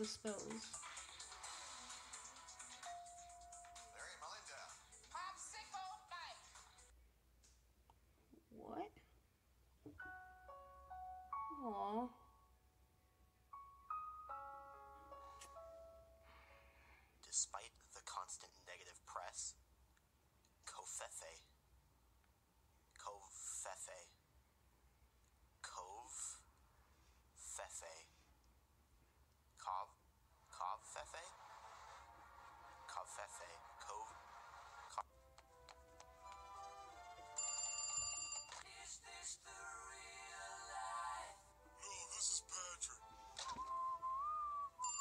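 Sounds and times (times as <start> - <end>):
light background music: 0.0 - 6.9, 10.0 - 12.6, 13.5 - 17.0, 30.8 - 44.8
cartoon telephone ringing: 37.4 - 38.6.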